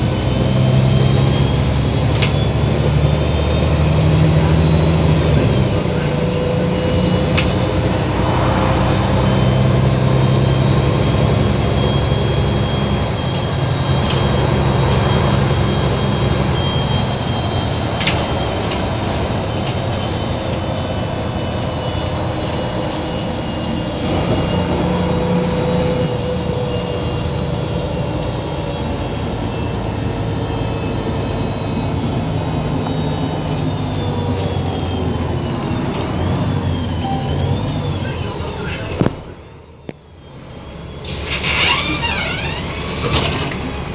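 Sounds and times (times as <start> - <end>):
bus engine drone: 0.0 - 43.9
road noise: 0.0 - 43.9.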